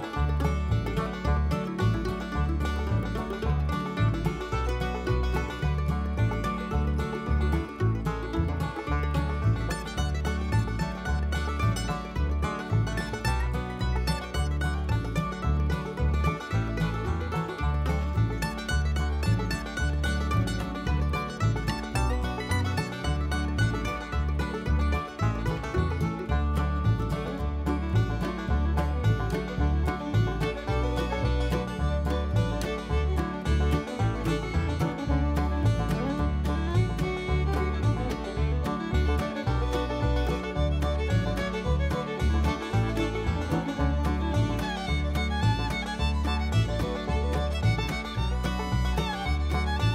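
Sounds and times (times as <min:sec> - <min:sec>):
upbeat bluegrass music with banjo: 0:00.0 - 0:49.9.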